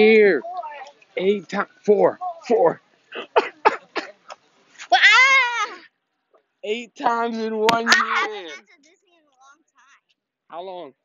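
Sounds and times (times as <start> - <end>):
girl squealing: 4.9 - 5.9, 7.9 - 8.6.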